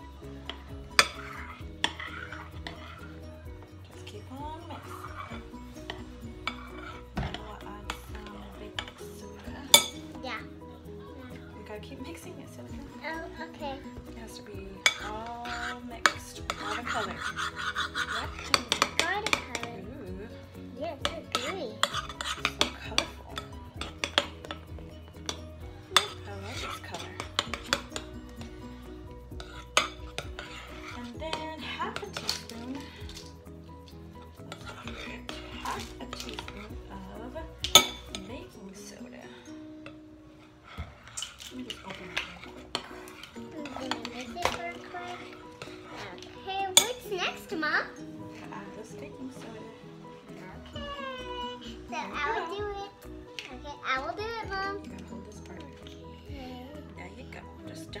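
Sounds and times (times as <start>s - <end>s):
metal spoon stirring in bowl: 0.0s - 53.6s, 54.7s - 56.3s.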